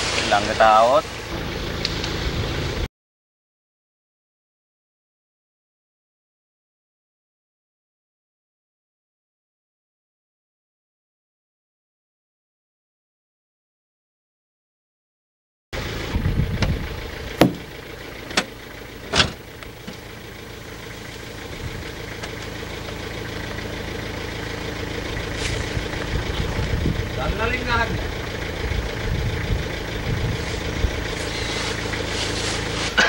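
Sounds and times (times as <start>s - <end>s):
vehicle engine idling: 0.0s - 2.9s, 15.8s - 33.0s
sharp knocks: 17.4s - 17.7s.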